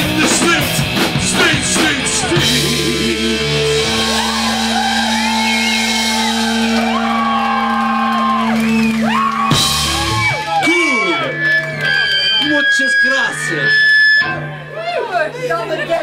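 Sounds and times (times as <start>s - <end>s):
singer shouting and wailing: 0.0s - 5.4s, 10.0s - 11.5s
punk rock band playing: 0.0s - 16.0s.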